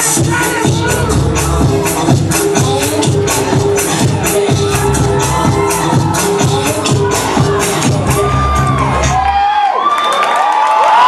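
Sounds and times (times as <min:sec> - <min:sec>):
dance music with heavy beat: 0:00.0 - 0:09.4
crowd cheering and whooping: 0:03.2 - 0:11.0.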